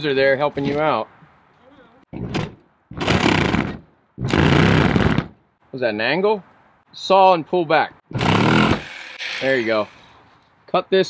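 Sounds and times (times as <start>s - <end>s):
reciprocating saw cutting wood: 8.1s - 10.3s.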